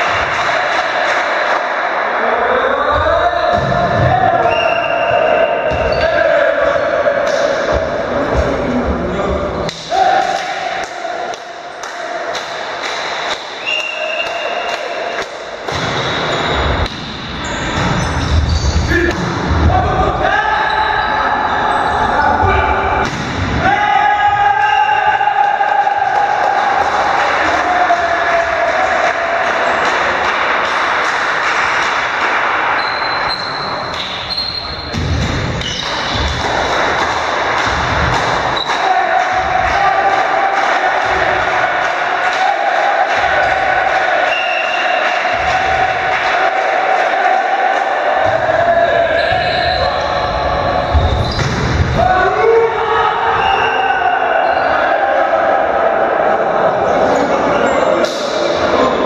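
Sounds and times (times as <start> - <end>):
players shouting: 0.0 - 59.0
volleyball hits: 9.7 - 19.7, 22.8 - 23.8, 33.8 - 52.0.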